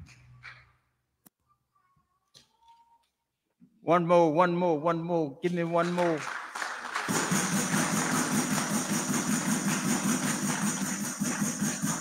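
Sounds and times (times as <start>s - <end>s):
crowd applauding: 5.8s - 12.0s.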